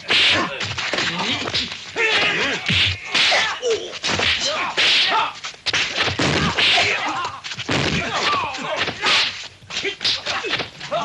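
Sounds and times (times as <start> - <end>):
whip-like punch impacts: 2.1 - 9.3.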